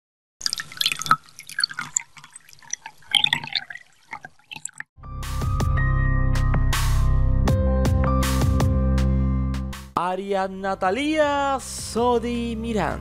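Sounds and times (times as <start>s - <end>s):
water drops dripping into water: 0.4s - 4.9s
music: 5.0s - 13.0s.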